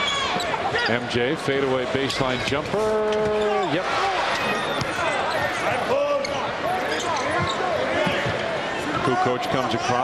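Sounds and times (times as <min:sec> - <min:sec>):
voices in arena: 0:00.0 - 0:10.0
shoe squeaks: 0:06.2 - 0:07.8.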